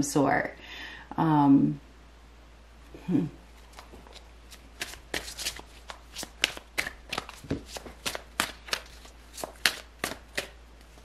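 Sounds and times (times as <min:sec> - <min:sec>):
cards being shuffled: 0:03.6 - 0:11.0.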